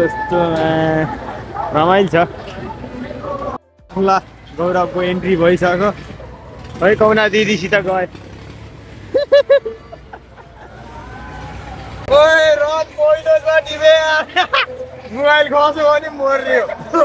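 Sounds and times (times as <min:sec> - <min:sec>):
low rumble of fairground machinery: 0:00.0 - 0:17.0
voices talking and calling out: 0:00.0 - 0:17.0.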